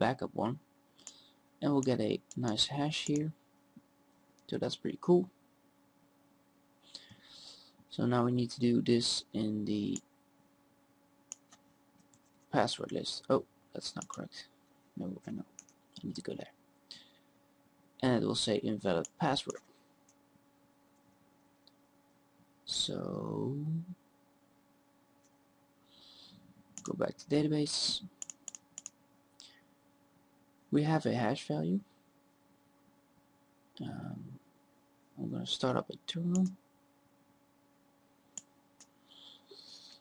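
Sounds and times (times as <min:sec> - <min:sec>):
computer mouse clicks: 0:11.3 - 0:13.0, 0:13.9 - 0:14.2, 0:15.5 - 0:16.1, 0:28.2 - 0:29.0, 0:38.3 - 0:39.0.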